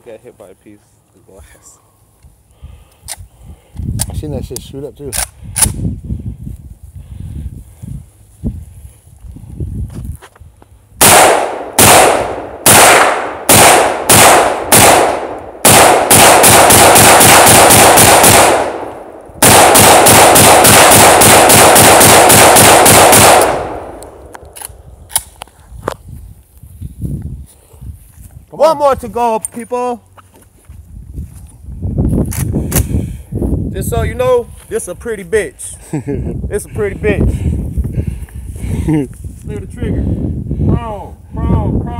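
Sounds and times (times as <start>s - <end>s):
sharp clicks: 2.9s - 5.8s, 23.2s - 25.5s
rifle gunshots: 11.0s - 24.2s.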